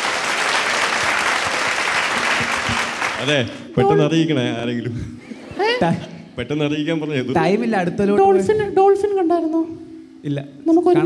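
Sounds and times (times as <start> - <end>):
speech over microphone: 3.2 - 4.7, 7.2 - 11.0.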